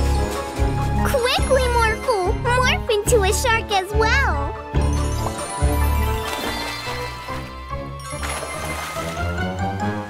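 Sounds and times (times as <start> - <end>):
cartoon background music: 0.0 - 10.0.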